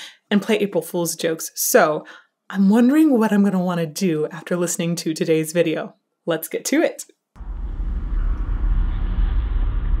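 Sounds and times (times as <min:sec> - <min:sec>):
deep spacecraft rumble: 0:07.4 - 0:10.0.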